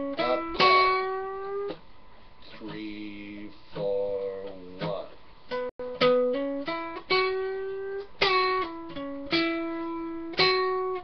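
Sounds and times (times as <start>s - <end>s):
acoustic guitar notes: 0.0s - 11.0s.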